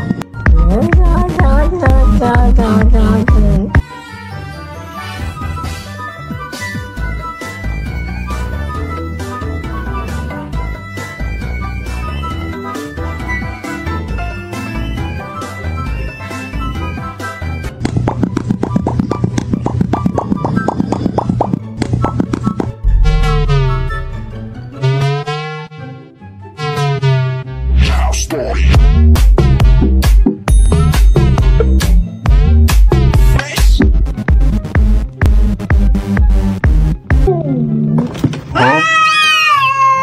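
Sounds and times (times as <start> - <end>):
background music with low bass: 0.0 - 38.4
cartoon mouth pops: 17.8 - 22.8
cat meowing: 38.6 - 40.0.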